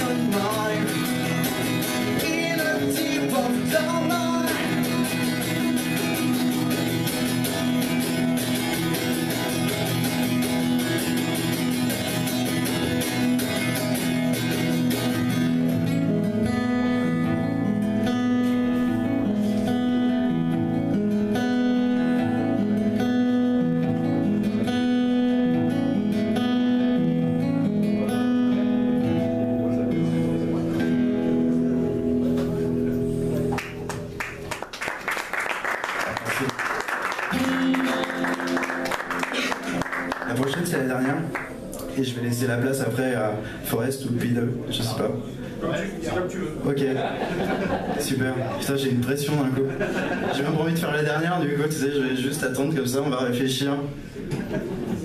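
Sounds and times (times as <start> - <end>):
man singing: 0.0 - 5.4
acoustic guitar: 0.0 - 55.0.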